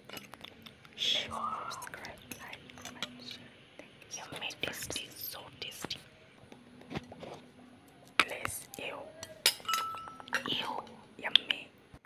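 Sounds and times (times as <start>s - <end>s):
soft whispering: 0.0s - 9.4s, 10.3s - 11.8s.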